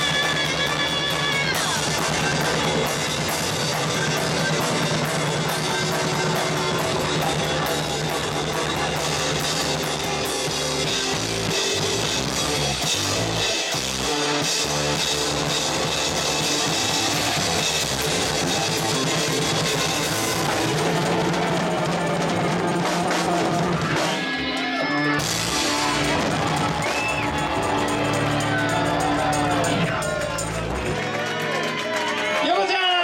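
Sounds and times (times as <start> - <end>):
electric bass: 0.0 - 31.3
drum kit: 0.0 - 32.4
electric guitars: 0.0 - 32.4
live rock band: 0.0 - 33.0.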